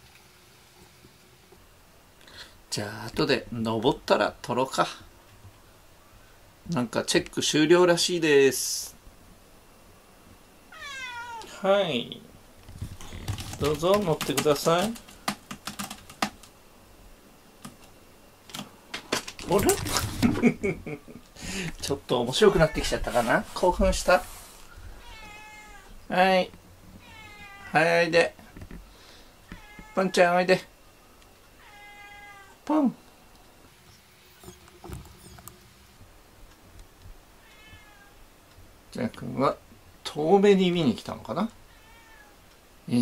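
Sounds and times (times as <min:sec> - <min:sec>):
faint cat meow: 0:10.7 - 0:11.6, 0:22.5 - 0:23.1, 0:24.9 - 0:26.0, 0:27.0 - 0:27.9, 0:29.5 - 0:30.2, 0:31.6 - 0:32.6, 0:37.4 - 0:38.2, 0:41.7 - 0:42.4.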